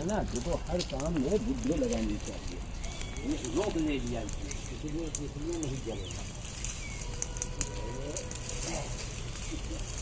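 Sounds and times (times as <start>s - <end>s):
brush fire crackling and popping: 0.0s - 10.0s
low fire rumble: 0.0s - 10.0s.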